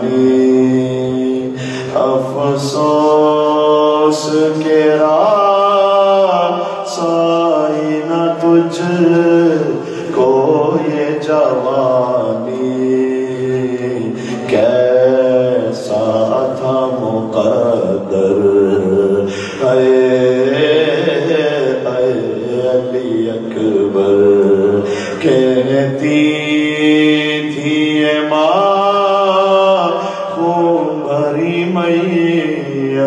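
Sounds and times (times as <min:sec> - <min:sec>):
man chanting into a microphone: 0:00.0 - 0:33.0.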